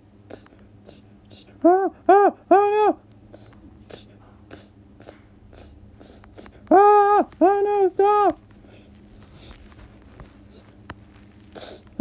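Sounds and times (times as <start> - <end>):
faint low hum: 0.0 - 12.0
person gasping: 0.3 - 2.1, 3.3 - 6.7, 11.6 - 12.0.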